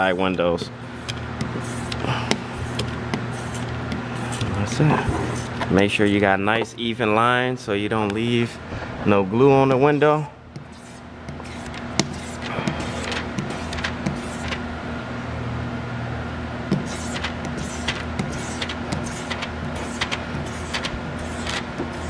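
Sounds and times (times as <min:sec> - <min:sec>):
low mechanical hum: 0:00.0 - 0:22.0
hand scraping wet window glass: 0:10.6 - 0:14.6.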